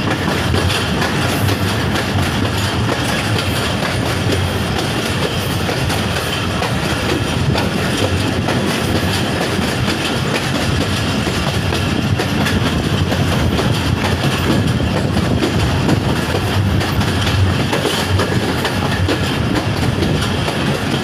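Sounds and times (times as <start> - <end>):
train coaches rumbling: 0.0 - 21.0
wheels clicking over rail joints: 0.0 - 21.0.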